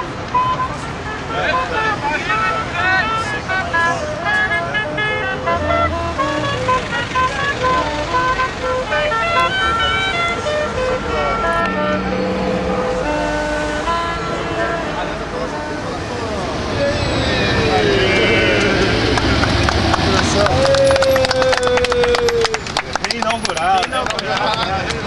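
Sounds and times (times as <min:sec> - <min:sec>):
tooting notes at many pitches: 0:00.0 - 0:20.5
voices: 0:00.0 - 0:25.0
low held toot: 0:07.6 - 0:14.7, 0:16.5 - 0:19.8.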